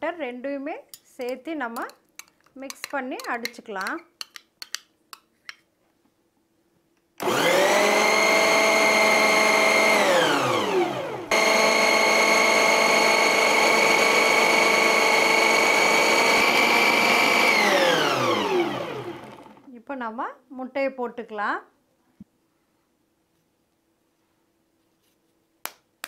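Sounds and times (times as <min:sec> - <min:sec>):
mixer motor whining: 0:07.2 - 0:19.7.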